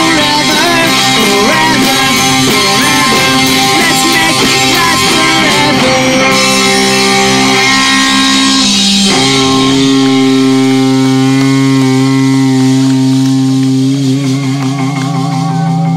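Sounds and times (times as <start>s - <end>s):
electric guitar notes ringing: 0.0s - 15.9s.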